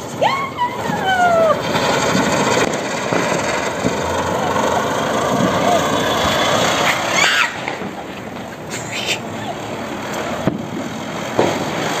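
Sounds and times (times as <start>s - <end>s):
spinning firecracker hissing sparks: 0.0s - 12.0s.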